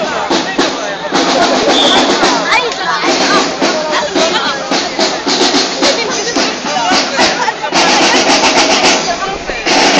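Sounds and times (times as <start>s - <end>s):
fast even drum beat: 0.0s - 9.9s
parade drumming and music: 0.0s - 9.9s
people's voices: 0.0s - 9.9s.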